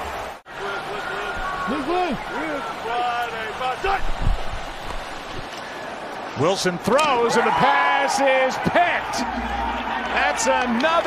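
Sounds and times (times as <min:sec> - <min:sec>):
football players shouting: 0:00.5 - 0:04.2, 0:06.5 - 0:11.0.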